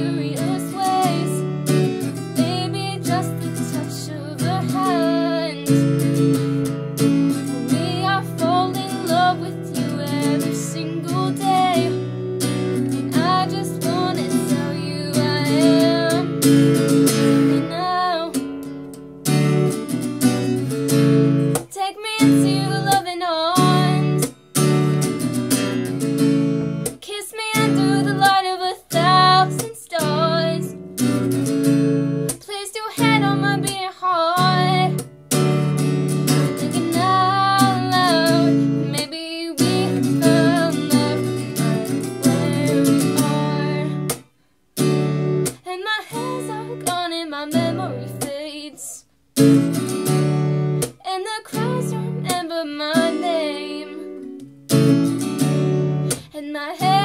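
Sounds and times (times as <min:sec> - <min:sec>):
woman singing: 0:00.0 - 0:06.5, 0:07.3 - 0:18.8, 0:21.5 - 0:24.3, 0:26.9 - 0:31.2, 0:32.3 - 0:35.5, 0:36.2 - 0:44.2, 0:45.5 - 0:49.1, 0:50.8 - 0:54.3, 0:56.1 - 0:57.0
strummed acoustic guitar: 0:00.0 - 0:57.0.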